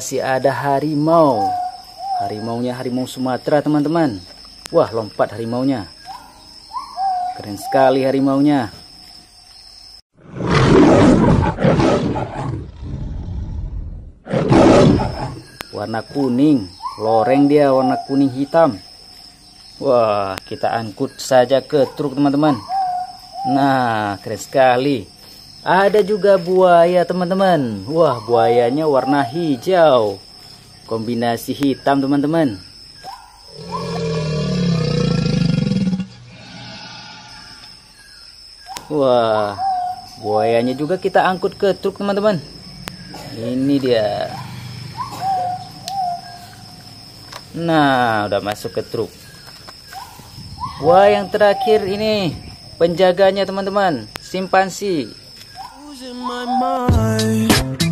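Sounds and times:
tiger roaring: 10.2s - 15.5s, 33.5s - 37.7s, 42.2s - 46.9s.

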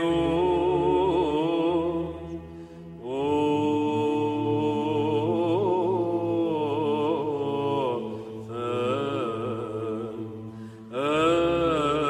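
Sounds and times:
voices chanting: 0.0s - 2.0s.

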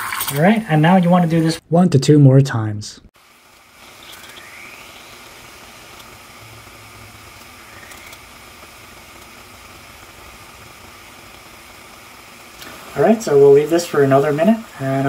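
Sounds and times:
water boiling in saucepan: 0.0s - 1.6s, 3.2s - 15.0s.

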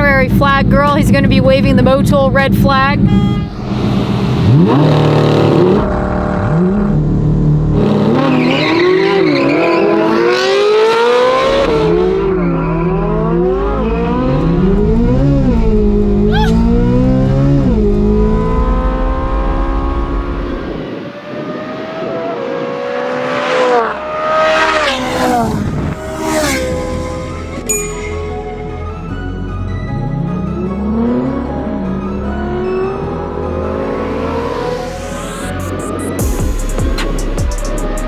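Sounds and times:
car engine accelerating hard: 0.0s - 38.0s
sharp high-pitched squeals: 25.9s - 29.0s.

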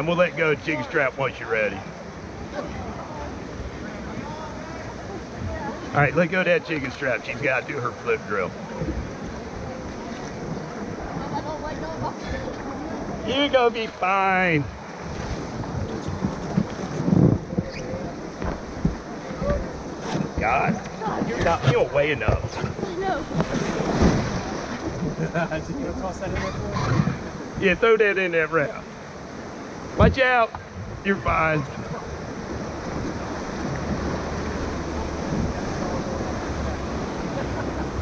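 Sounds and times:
faint distant voices: 0.0s - 14.8s
river water rushing: 0.0s - 38.0s
wind buffeting microphone: 8.2s - 27.8s, 29.4s - 38.0s.

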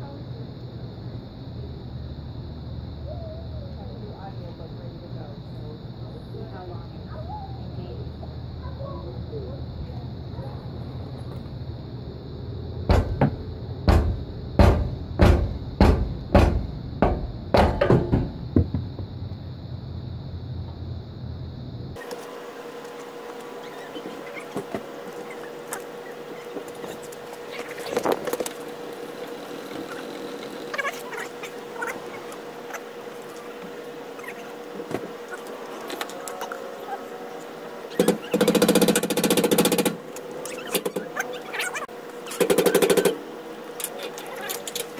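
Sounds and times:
faint steady hum: 0.0s - 44.9s.

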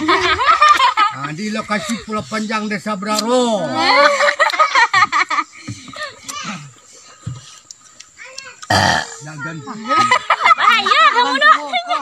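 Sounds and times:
harsh vocal burst: 8.6s - 9.3s.

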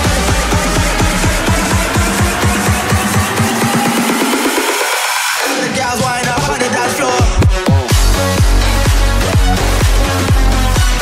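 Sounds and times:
electronic music with kick drum: 0.0s - 11.0s.

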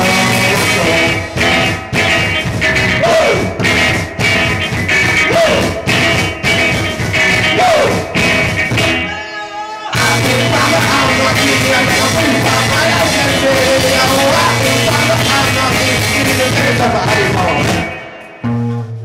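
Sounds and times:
drums in a steady beat: 0.0s - 9.3s, 10.0s - 19.0s
electric guitar: 0.0s - 19.0s.

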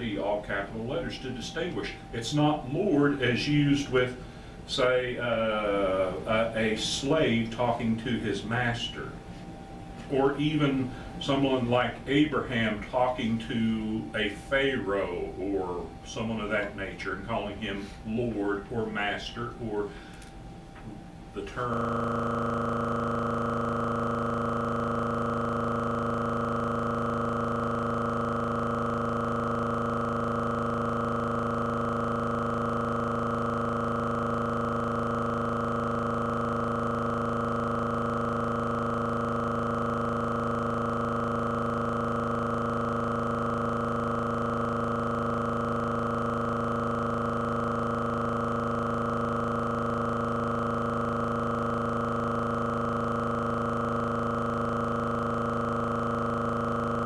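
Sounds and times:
steady electronic drone: 0.0s - 57.0s.

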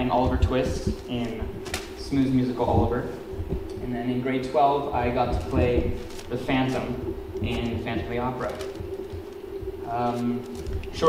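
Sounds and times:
man speaking into a microphone: 0.0s - 3.2s, 3.8s - 8.7s, 9.9s - 11.0s
sound system hum: 0.0s - 11.0s.

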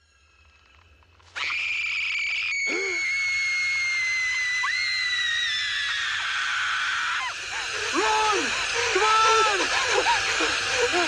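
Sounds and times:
boy screaming: 2.6s - 7.3s.

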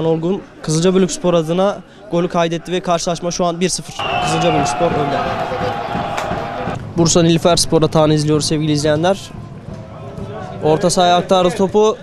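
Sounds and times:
football match crowd noise: 0.0s - 12.0s.

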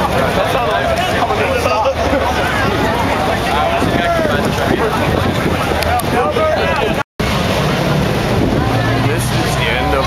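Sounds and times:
crowd voices: 0.0s - 10.0s
traffic engines rumbling: 0.0s - 10.0s.

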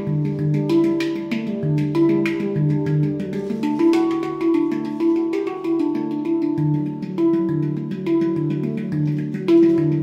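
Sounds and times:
handpan notes ringing: 0.0s - 10.0s.

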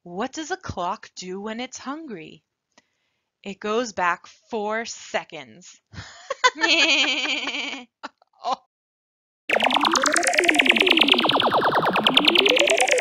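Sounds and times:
cartoon voice laughing: 6.4s - 8.6s
electronic pulsing warble: 9.5s - 13.0s.

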